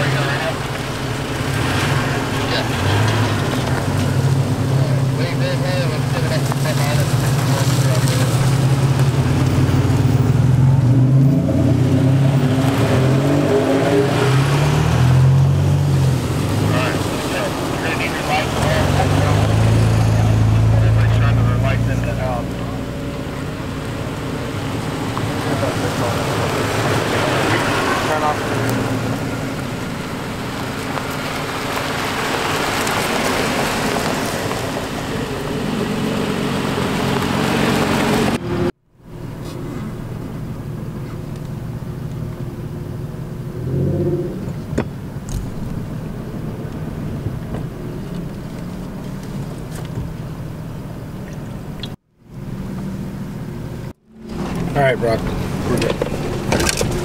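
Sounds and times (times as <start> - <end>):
truck engines running: 0.0 - 57.0.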